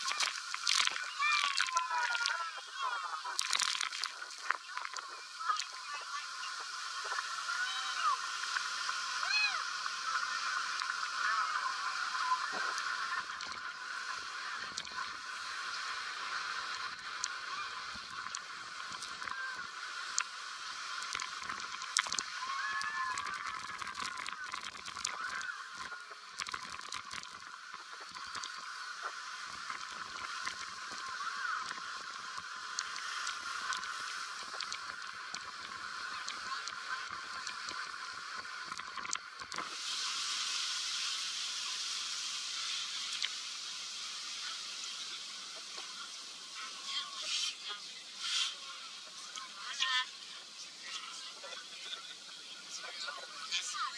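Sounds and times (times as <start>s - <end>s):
churning water: 0.0s - 41.6s
wind: 0.0s - 53.9s.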